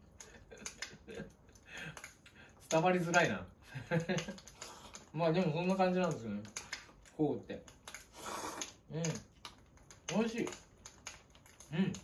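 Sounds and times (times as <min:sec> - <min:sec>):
person slurping noodles: 0:08.0 - 0:08.9.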